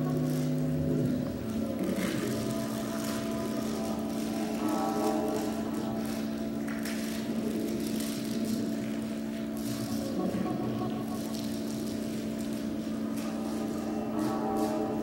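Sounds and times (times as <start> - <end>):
electronic drone of held tones: 0.0 - 15.0.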